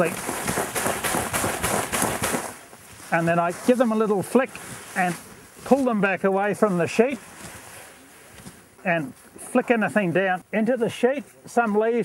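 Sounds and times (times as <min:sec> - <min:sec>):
plants rustling and crackling: 0:00.0 - 0:12.0.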